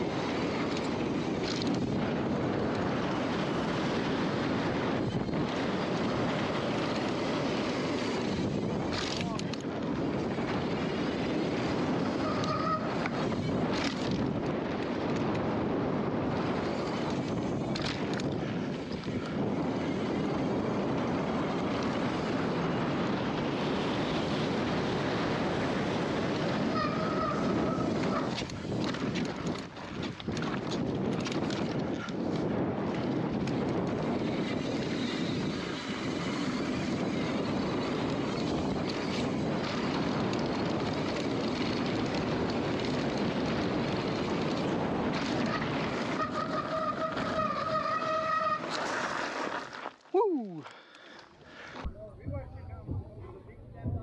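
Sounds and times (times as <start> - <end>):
wind on microphone: 0.0 - 49.5, 50.2 - 54.0
bike tyres on dirt: 0.0 - 54.0.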